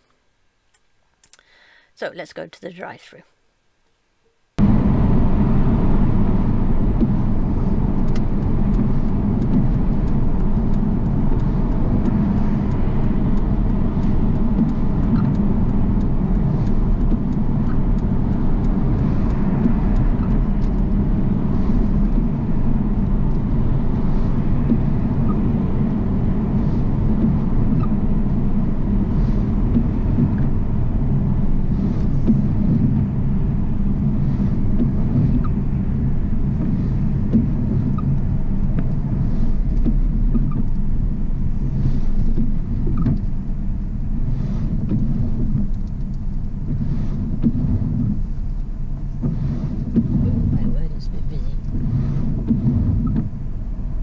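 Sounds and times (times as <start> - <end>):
car cabin road rumble: 4.6 - 54.0.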